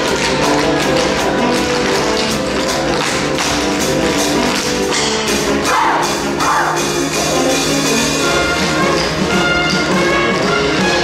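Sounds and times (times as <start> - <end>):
pit band playing upbeat tune: 0.0 - 11.0.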